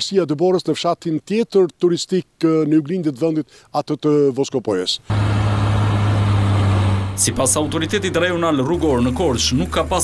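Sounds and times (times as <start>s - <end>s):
truck engine running: 5.1s - 10.0s.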